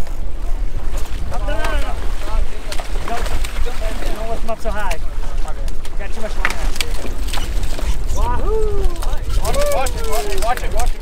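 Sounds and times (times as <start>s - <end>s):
fish thrashing: 0.0s - 4.7s, 5.6s - 11.0s
water splashing: 0.0s - 11.0s
wind rumbling on microphone: 0.0s - 11.0s.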